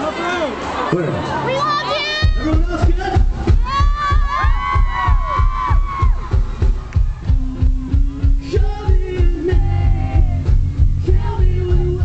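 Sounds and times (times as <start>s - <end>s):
crowd screaming and cheering: 0.0s - 12.0s
live pop-punk band: 1.9s - 12.0s
kick-drum beat: 2.2s - 12.0s.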